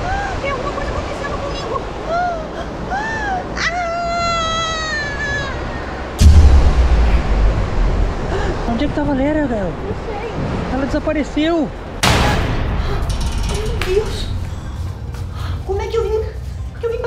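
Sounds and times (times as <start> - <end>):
woman's frightened cries: 2.0 - 6.1
woman screaming: 3.6 - 5.8
loud low thump: 6.2 - 9.0, 12.0 - 14.7
rumble: 6.2 - 10.7, 11.8 - 17.0.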